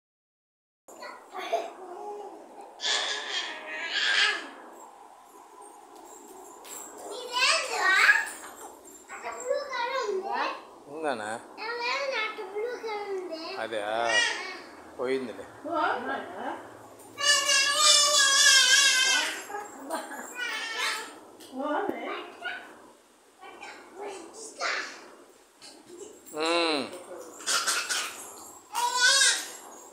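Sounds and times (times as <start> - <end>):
children calling and squealing: 0.9 - 4.9, 6.8 - 10.8, 11.4 - 14.9, 17.0 - 21.4, 27.4 - 29.9
children squealing: 2.4 - 4.6, 17.2 - 19.6, 27.4 - 29.7.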